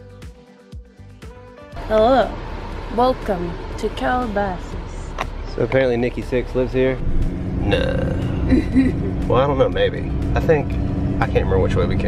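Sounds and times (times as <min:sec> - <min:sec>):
van engine droning: 0:01.6 - 0:12.0.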